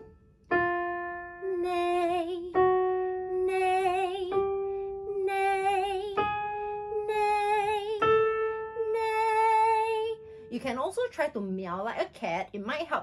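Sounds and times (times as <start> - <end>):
piano notes: 0.0 - 11.1.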